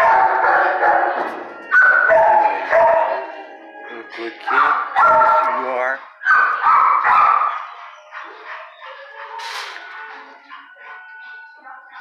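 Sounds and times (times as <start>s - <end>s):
dog howling: 0.0s - 12.0s.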